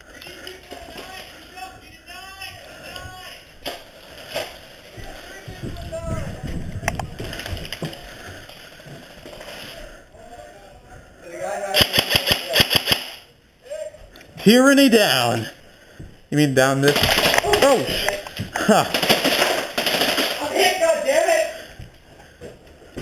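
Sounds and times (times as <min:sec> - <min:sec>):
shuffling: 0:00.2 - 0:11.1
airsoft gun rapid shots: 0:11.8 - 0:13.3, 0:18.9 - 0:20.5.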